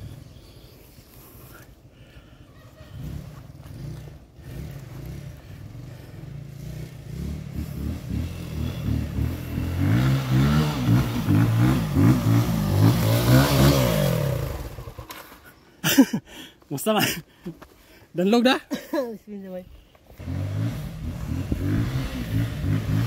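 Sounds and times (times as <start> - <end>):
dirt bike engine revving: 2.8 - 15.1, 20.1 - 23.0.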